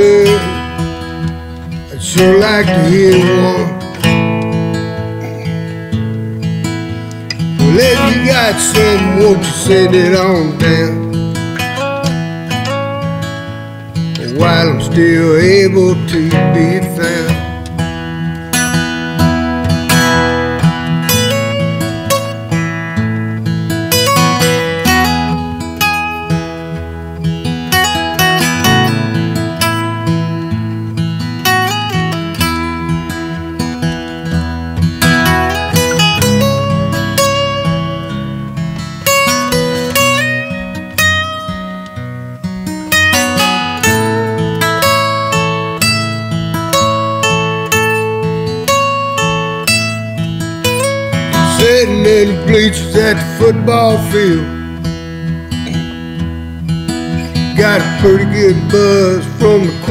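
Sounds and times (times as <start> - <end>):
acoustic guitars playing country music: 0.0 - 59.9.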